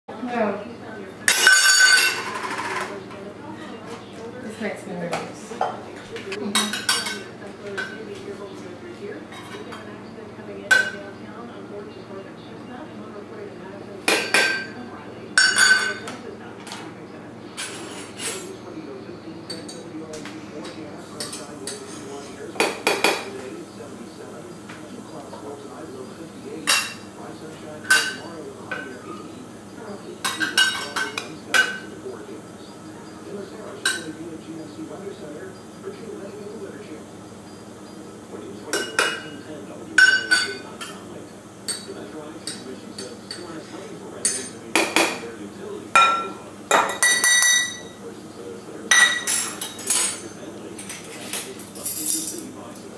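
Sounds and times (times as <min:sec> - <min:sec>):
utensils clinking against dishes: 0:01.2 - 0:04.3, 0:05.1 - 0:11.1, 0:14.0 - 0:52.9
metal utensils clinking: 0:01.3 - 0:03.0, 0:15.4 - 0:16.1, 0:46.0 - 0:48.0, 0:48.9 - 0:52.5.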